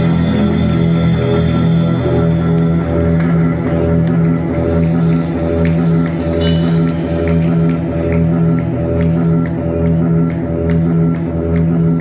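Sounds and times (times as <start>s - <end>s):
electric guitar: 0.0s - 12.0s
low bass line: 0.0s - 12.0s.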